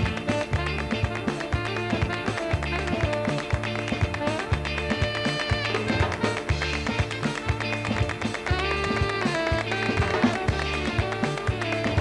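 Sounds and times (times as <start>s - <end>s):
bass line: 0.0s - 12.0s
saxophone: 0.0s - 12.0s
sharp percussive hits: 0.0s - 12.0s.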